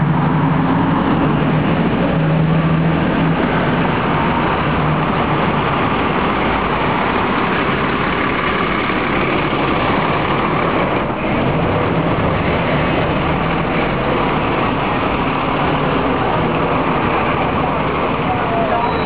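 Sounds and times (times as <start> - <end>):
bus engine idling: 0.0 - 19.0
people talking: 15.9 - 19.0.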